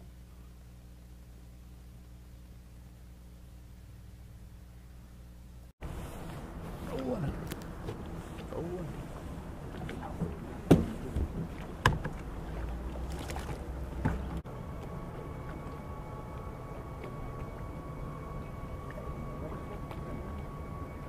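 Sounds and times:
boat motor running: 5.8 - 21.0
sharp knocks in boat: 9.7 - 12.3, 13.0 - 14.4.

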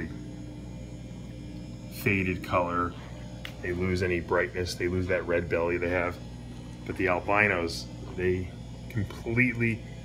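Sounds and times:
faint high whine: 0.0 - 10.0
low electrical hum: 0.0 - 10.0.

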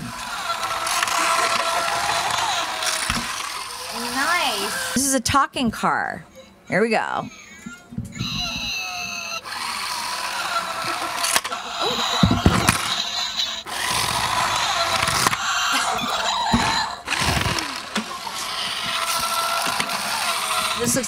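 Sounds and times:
toy electronic sound effects: 0.0 - 5.0, 8.2 - 21.0
toy voice clips: 0.2 - 5.0, 8.2 - 21.0.

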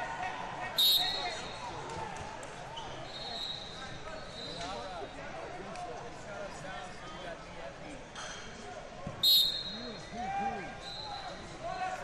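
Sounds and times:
crowd chatter in a large hall: 0.0 - 12.0
distant whistle: 0.8 - 1.4, 9.2 - 10.0
referee's whistle blast: 0.8 - 1.5, 9.2 - 10.0.

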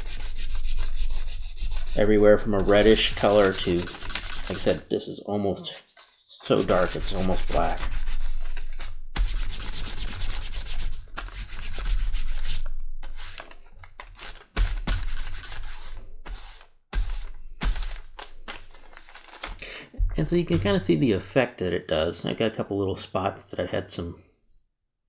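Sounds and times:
wooden block scrubbing on leather: 0.0 - 4.8, 5.6 - 13.4.

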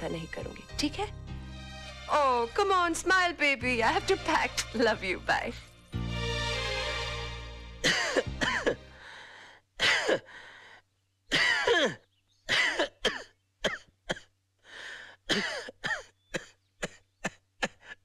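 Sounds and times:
background music chord: 0.0 - 9.2.

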